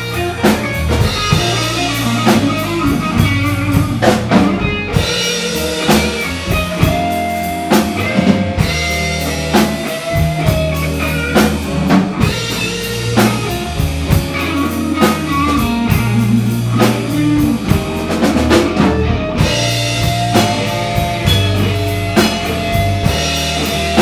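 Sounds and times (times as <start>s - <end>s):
bass guitar: 0.0s - 24.0s
drum kit steady beat: 0.0s - 24.0s
lead electric guitar: 0.0s - 24.0s.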